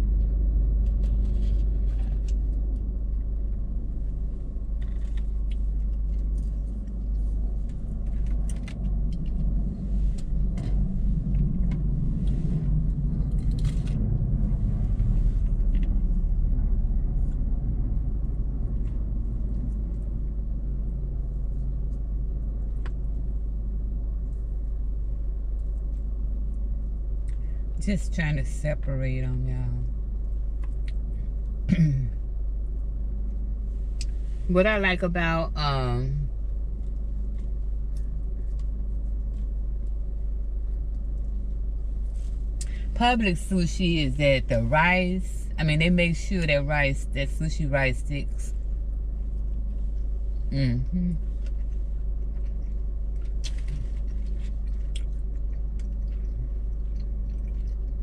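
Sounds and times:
car cabin rumble: 0:00.0 - 0:55.0.

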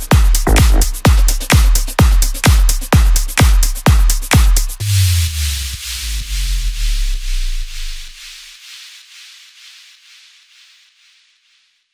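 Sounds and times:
hissing electronic percussion pattern: 0:00.4 - 0:01.0.

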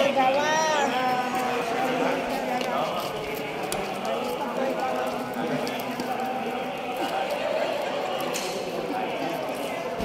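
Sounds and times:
footsteps scuffing on concrete: 0:01.2 - 0:07.4.

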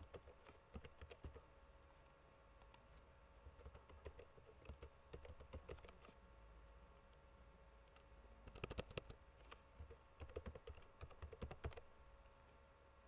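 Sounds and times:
faint typing on keyboard: 0:00.0 - 0:06.2, 0:06.9 - 0:12.6.

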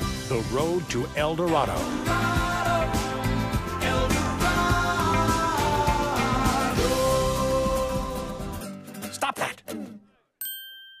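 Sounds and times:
bright chime ding: 0:10.4 - 0:11.0.

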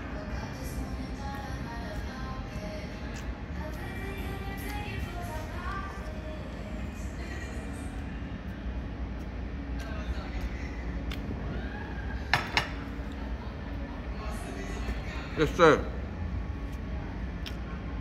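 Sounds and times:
low room rumble: 0:00.0 - 0:18.0.

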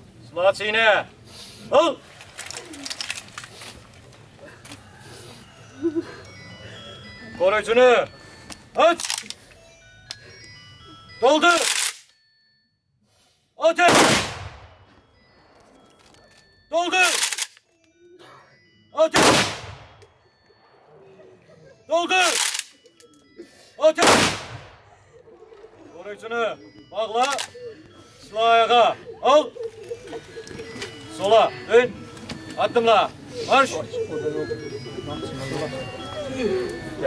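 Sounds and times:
rifles clattering: 0:02.1 - 0:04.0, 0:09.0 - 0:09.4, 0:11.6 - 0:12.1, 0:17.0 - 0:17.7, 0:22.2 - 0:23.1, 0:27.2 - 0:27.6
man shouting command: 0:13.6 - 0:14.0
rifle volley with echo: 0:13.9 - 0:14.8, 0:19.2 - 0:20.0, 0:24.0 - 0:24.9.

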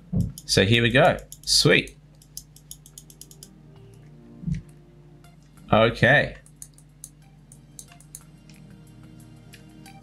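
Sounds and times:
soft background music: 0:00.4 - 0:10.0
computer mouse clicking: 0:02.2 - 0:03.5, 0:06.4 - 0:08.6.

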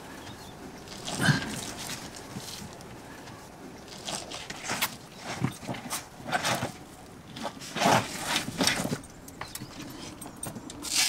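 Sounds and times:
faint rustling: 0:00.0 - 0:11.0.

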